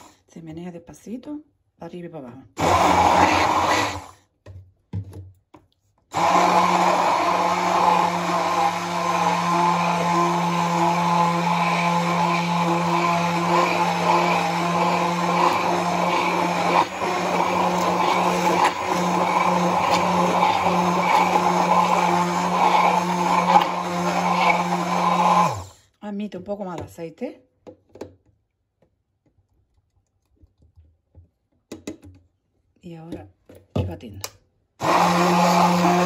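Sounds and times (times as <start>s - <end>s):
immersion blender running: 2.6s - 4.2s, 6.1s - 25.8s, 34.8s - 36.0s.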